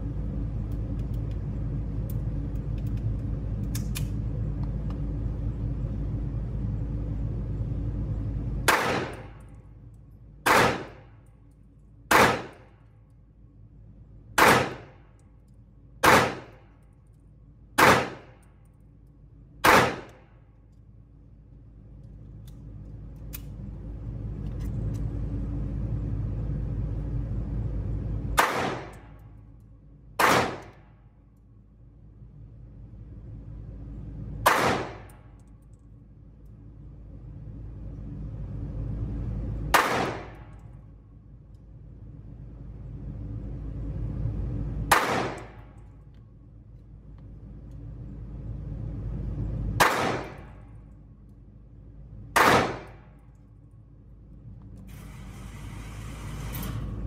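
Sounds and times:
steady low rumble: 0:00.0 - 0:57.0
pistol shots echoing indoors: 0:08.6 - 0:09.6, 0:10.4 - 0:11.1, 0:12.1 - 0:12.8, 0:14.4 - 0:17.2, 0:17.8 - 0:18.8, 0:19.6 - 0:20.3, 0:28.4 - 0:29.4, 0:30.2 - 0:30.8, 0:34.4 - 0:35.5, 0:39.7 - 0:40.7, 0:44.9 - 0:46.0, 0:49.8 - 0:50.8, 0:52.3 - 0:53.4.

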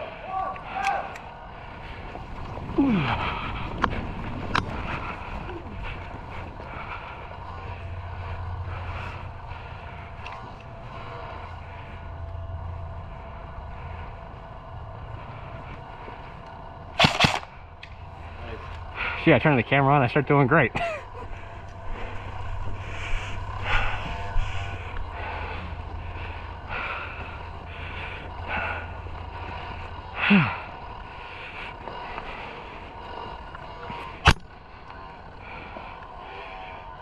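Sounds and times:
airsoft rifle shots: 0:17.0 - 0:17.5
sharp clicks: 0:17.0 - 0:18.0.

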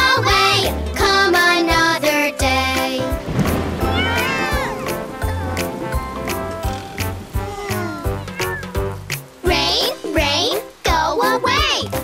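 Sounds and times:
children's music with steady beat: 0:00.0 - 0:12.0
cartoon kitten meowing: 0:03.9 - 0:04.8, 0:07.4 - 0:08.8.

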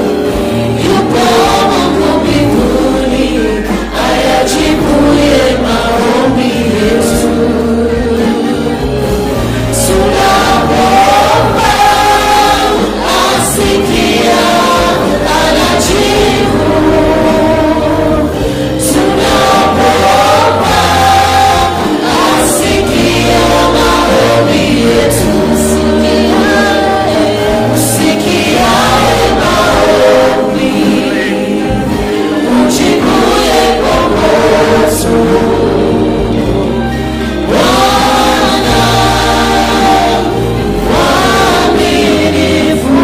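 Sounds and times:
congregation singing a hymn: 0:00.0 - 0:43.0
low instrumental bass line: 0:00.0 - 0:43.0.

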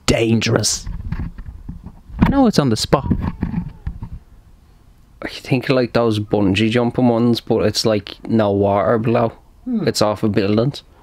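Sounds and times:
person speaking: 0:00.0 - 0:00.9, 0:05.2 - 0:10.9.

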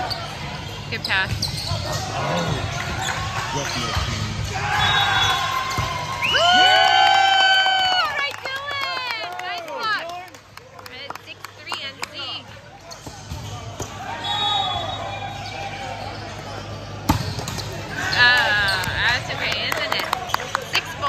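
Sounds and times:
people cheering and yelling: 0:02.3 - 0:10.0.

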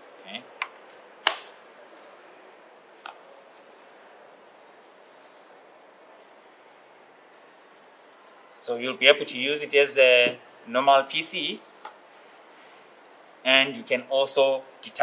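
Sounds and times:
faint room hiss: 0:00.0 - 0:15.0
loud snap: 0:00.6 - 0:01.6
tablet case clicks: 0:01.2 - 0:01.5.

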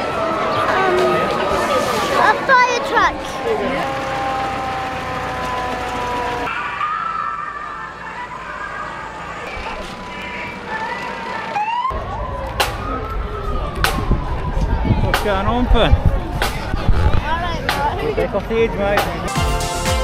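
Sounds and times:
fire engine sirens wailing: 0:00.0 - 0:17.2.

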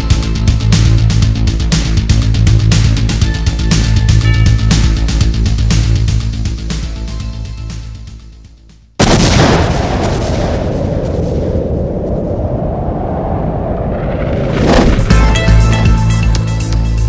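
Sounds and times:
music: 0:00.0 - 0:09.0, 0:14.8 - 0:17.0
music with steady low beat: 0:00.0 - 0:09.0, 0:15.1 - 0:17.0
loud boom with long rumble: 0:09.0 - 0:15.2.

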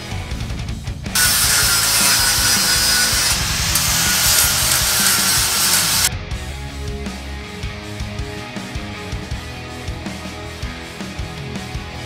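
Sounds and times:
background music: 0:00.0 - 0:12.0
power tool cutting metal: 0:01.2 - 0:06.1.

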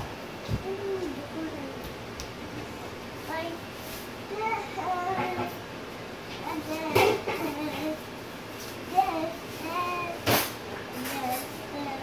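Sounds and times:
girl singing: 0:04.3 - 0:05.6, 0:06.4 - 0:08.1, 0:08.8 - 0:10.3, 0:10.9 - 0:12.0.

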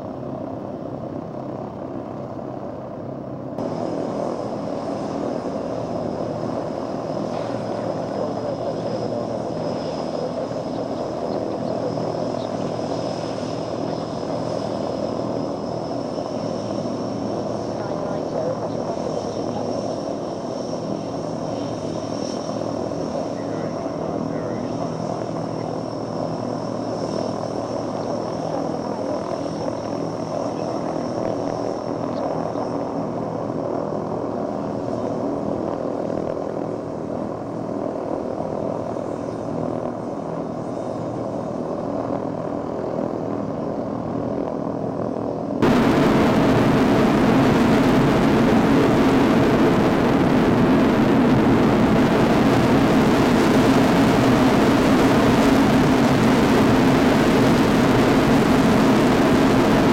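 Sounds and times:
aircraft engines droning: 0:00.0 - 0:59.9
high engine whine: 0:00.0 - 0:59.9.

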